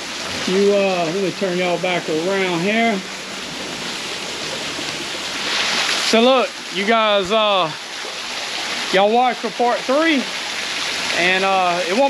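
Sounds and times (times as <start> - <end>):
small waterfall splashing: 0.0 - 12.0.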